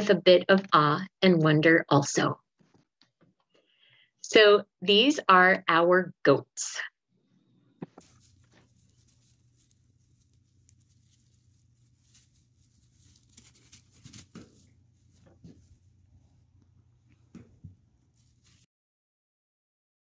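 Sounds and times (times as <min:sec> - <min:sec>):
goats scuffling on dry leaves: 0:08.0 - 0:15.9, 0:18.1 - 0:18.6.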